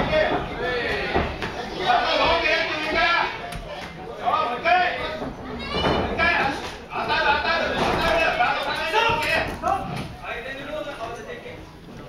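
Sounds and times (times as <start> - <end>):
loud shouting voices in hall: 4.4 - 10.0.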